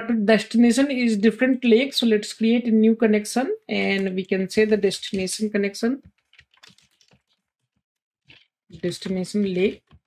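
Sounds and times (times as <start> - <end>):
faint keyboard typing: 6.0 - 7.7.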